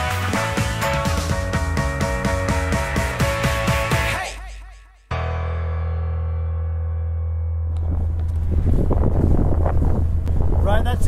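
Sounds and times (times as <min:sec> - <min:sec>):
boat motor droning: 0:07.8 - 0:11.0
wind buffeting microphone: 0:07.8 - 0:11.0.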